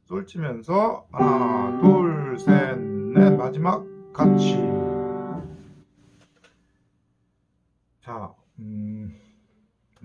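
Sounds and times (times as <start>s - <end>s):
piano chord: 1.2s - 5.8s.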